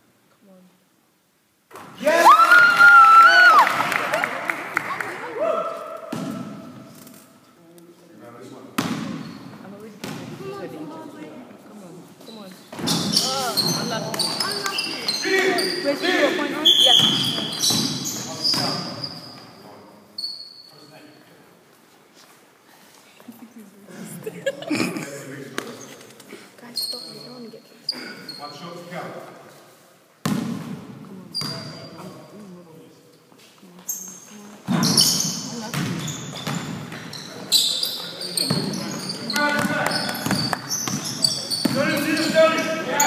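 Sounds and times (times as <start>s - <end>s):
basketball bouncing in a hall: 5.4s - 6.9s, 8.8s - 10.5s, 12.7s - 15.7s, 16.6s - 19.5s, 30.2s - 32.0s, 34.0s - 42.7s
sneakers squeaking on floor: 8.8s - 10.6s, 12.2s - 21.3s, 26.6s - 28.9s, 30.2s - 32.4s, 33.3s - 43.0s
short high squeak: 20.2s - 21.2s, 26.8s - 28.6s.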